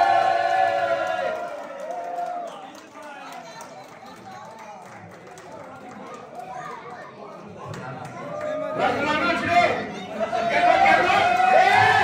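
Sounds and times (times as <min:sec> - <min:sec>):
people chattering: 0:02.4 - 0:12.0.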